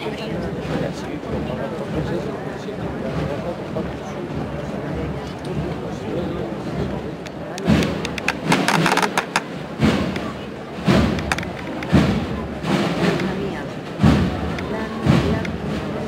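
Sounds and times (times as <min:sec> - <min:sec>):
crowd murmur: 0:00.0 - 0:16.0.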